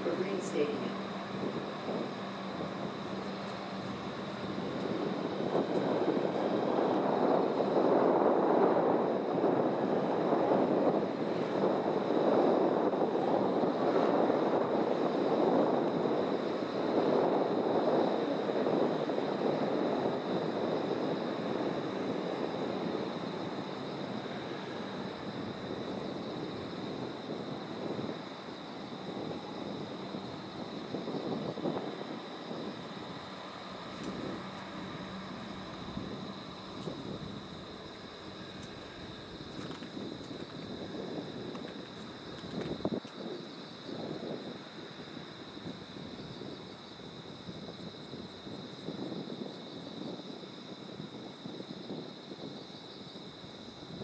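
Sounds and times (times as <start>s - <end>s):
tram pulling away rumbling: 0.0s - 42.9s.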